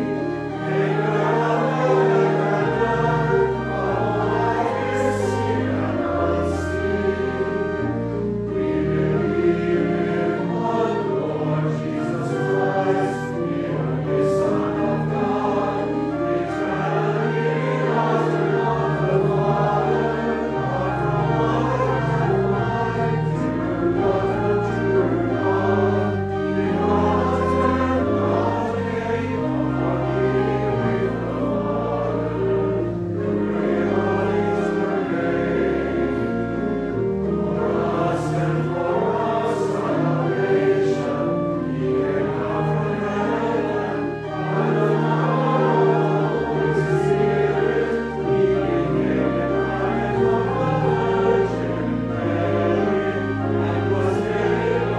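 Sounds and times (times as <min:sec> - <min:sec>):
church choir singing: 0:00.0 - 0:54.9
low organ notes: 0:00.0 - 0:54.9.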